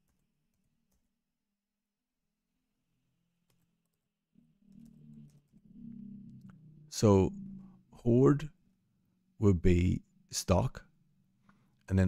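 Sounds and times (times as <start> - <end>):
keyboard typing: 0.0 - 1.2, 3.4 - 6.6
low hum: 4.3 - 11.9.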